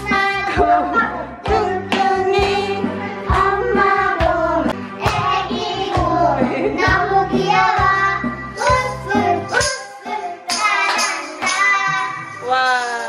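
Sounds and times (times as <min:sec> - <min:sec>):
karaoke backing music with beat: 0:00.0 - 0:13.0
child singing into microphone: 0:05.0 - 0:12.4.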